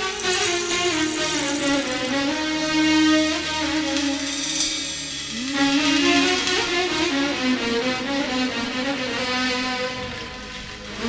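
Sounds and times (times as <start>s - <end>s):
violin-like melody: 0.0s - 11.0s.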